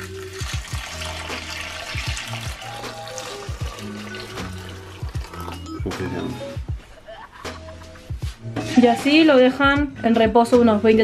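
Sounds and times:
water pouring into a bowl: 0.0s - 5.9s
background music with bass beat: 0.3s - 11.0s.

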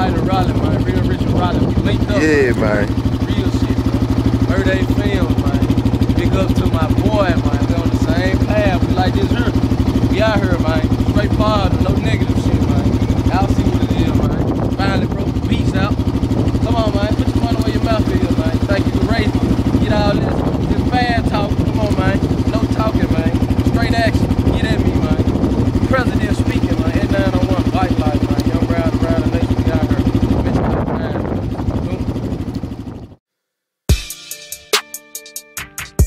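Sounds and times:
voices talking: 0.0s - 16.0s, 16.6s - 31.1s
dirt bike engine idling: 0.0s - 33.2s.

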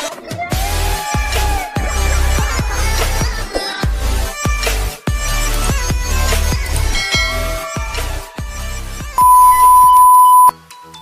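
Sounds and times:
high electronic beep: 9.2s - 10.5s.

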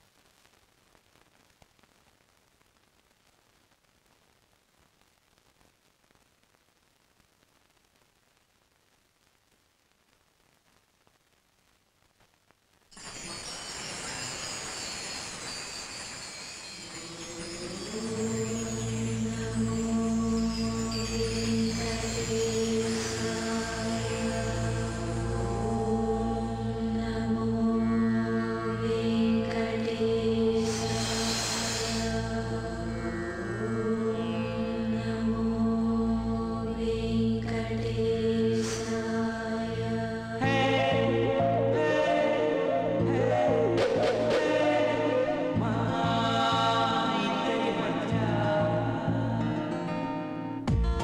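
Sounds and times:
chanted mantra: 16.8s - 49.7s.

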